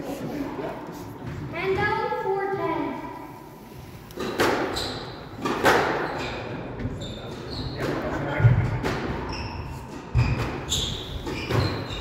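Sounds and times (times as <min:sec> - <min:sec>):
squash ball impacts: 0:04.2 - 0:06.1
shoe squeaks on wooden floor: 0:06.0 - 0:08.0, 0:09.2 - 0:12.0.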